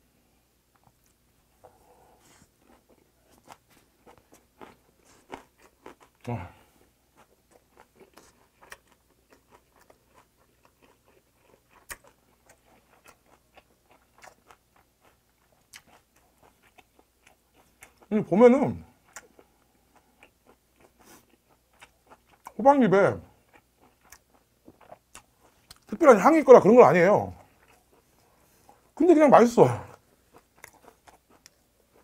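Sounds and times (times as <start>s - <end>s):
person chewing: 0.7s - 18.1s, 18.8s - 22.6s, 23.3s - 26.0s, 27.3s - 29.0s, 29.7s - 32.0s.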